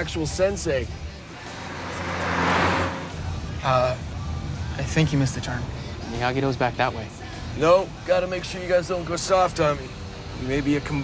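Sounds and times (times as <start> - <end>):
background music: 0.0 - 11.0
car driving past: 1.2 - 3.7.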